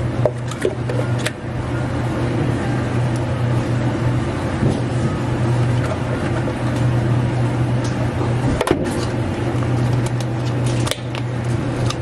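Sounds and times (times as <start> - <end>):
low machine hum with hiss: 0.0 - 12.0.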